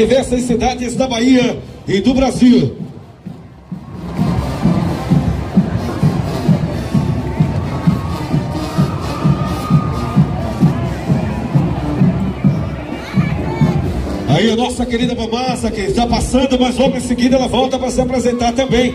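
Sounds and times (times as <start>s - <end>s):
bass drum beat: 0.0s - 18.9s
crowd: 0.0s - 18.9s
marching band playing: 0.0s - 18.9s.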